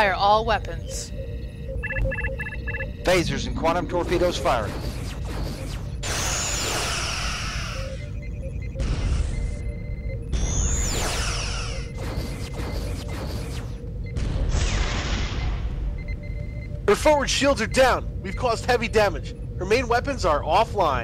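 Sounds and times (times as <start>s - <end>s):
low rumble: 0.0s - 6.1s
steady hum: 0.0s - 14.8s
falling electronic sweeps: 0.8s - 13.9s
sci-fi weapon fire: 3.7s - 7.6s, 10.4s - 15.8s.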